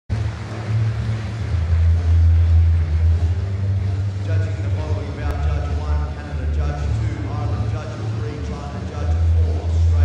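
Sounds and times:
low rumble: 0.1s - 10.0s.

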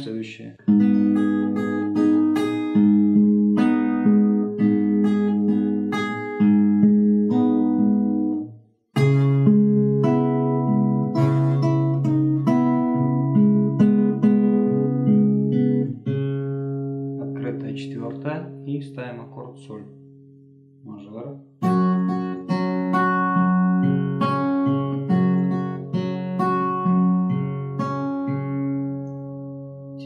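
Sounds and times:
acoustic guitar fingerpicking: 0.6s - 18.7s, 21.6s - 30.0s.

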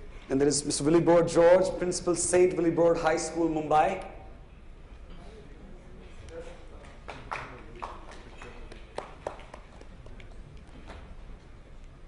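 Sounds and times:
low hum of a hall: 0.0s - 12.0s
people clapping sparsely: 6.8s - 11.1s.

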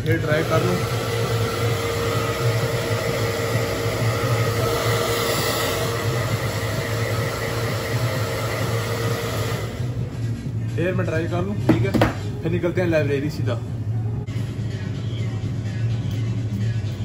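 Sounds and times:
hair dryer running: 0.0s - 10.2s.

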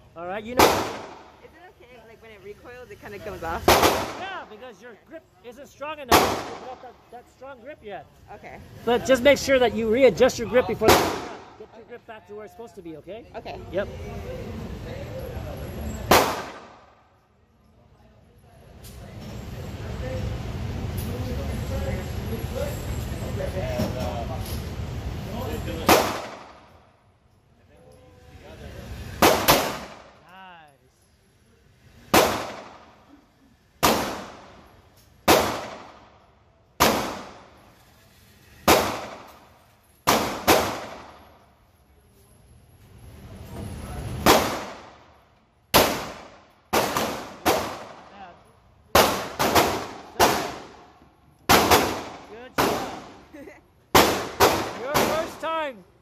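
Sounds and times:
pistol shots echoing indoors: 29.2s - 30.2s, 35.3s - 36.1s, 38.6s - 41.2s, 44.2s - 45.0s, 49.0s - 50.9s, 51.5s - 53.2s.

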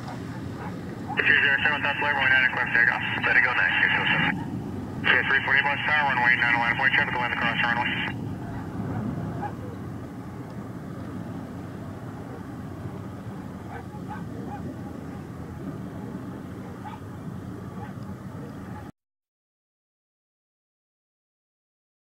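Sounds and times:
airliner jet engines rumbling: 0.0s - 18.9s.

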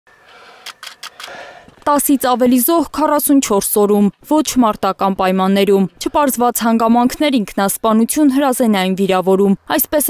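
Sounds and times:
person speaking: 1.8s - 10.0s.

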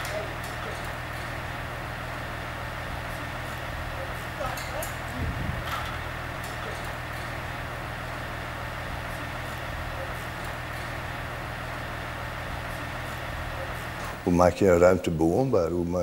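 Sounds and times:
low hum and hiss: 0.0s - 16.0s.

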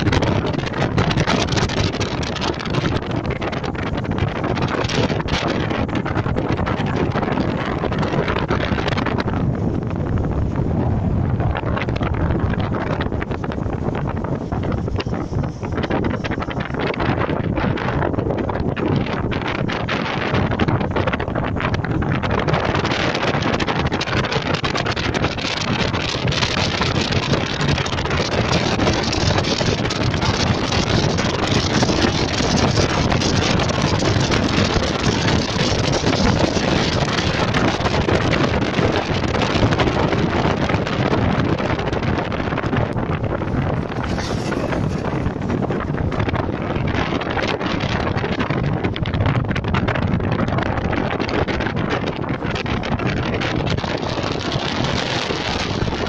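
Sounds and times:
car road noise: 0.0s - 56.0s
wind rushing over microphone: 0.0s - 56.0s.

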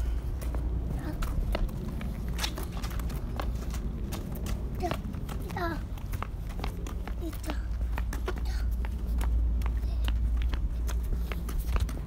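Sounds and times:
footsteps on brick paving: 0.0s - 12.0s.

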